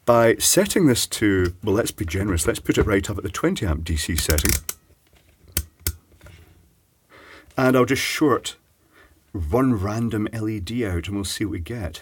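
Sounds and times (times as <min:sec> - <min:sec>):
rotary switch clicks: 0:04.2 - 0:04.8.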